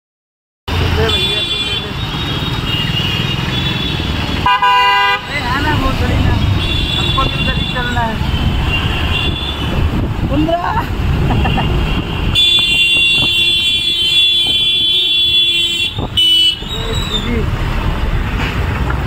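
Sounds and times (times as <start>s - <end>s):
traffic noise: 0.7s - 19.0s
vehicle horns honking: 0.8s - 9.8s, 11.3s - 17.3s
people's voices: 5.2s - 8.4s.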